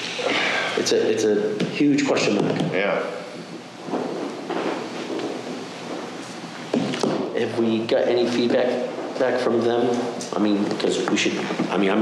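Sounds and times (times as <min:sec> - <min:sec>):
room hiss: 0:00.0 - 0:12.0
faint shuffling and rustling: 0:03.3 - 0:12.0.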